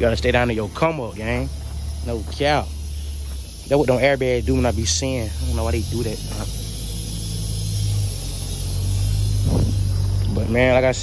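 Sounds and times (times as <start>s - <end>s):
heavy vehicle engine idling: 0.0s - 11.0s.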